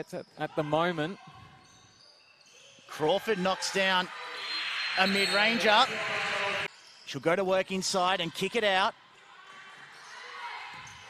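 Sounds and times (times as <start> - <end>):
basketball game in gym: 0.0 - 11.0.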